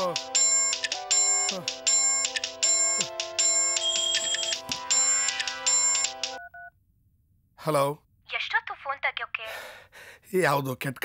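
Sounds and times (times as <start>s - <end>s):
mobile phone ringtone: 0.0s - 6.8s.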